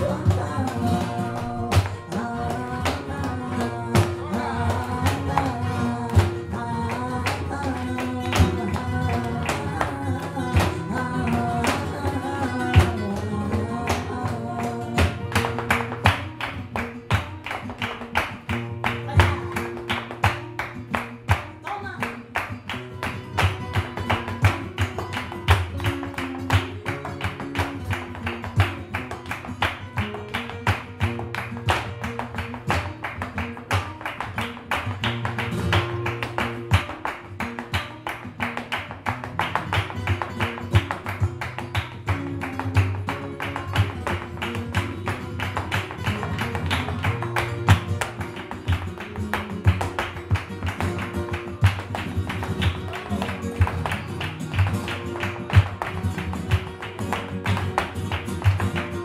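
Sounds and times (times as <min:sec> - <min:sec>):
dancer's shoes tapping on stage: 0:00.0 - 0:59.0
flamenco guitars: 0:00.0 - 0:59.0.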